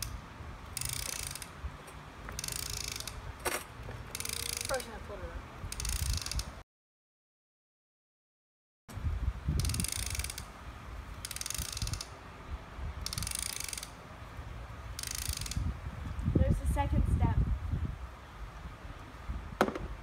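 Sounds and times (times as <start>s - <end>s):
plastic ratchet dial clicking: 0.8s - 1.5s, 2.3s - 3.2s, 4.1s - 4.9s, 5.7s - 6.5s, 9.6s - 10.5s, 11.2s - 12.1s, 13.0s - 14.0s, 15.0s - 15.6s.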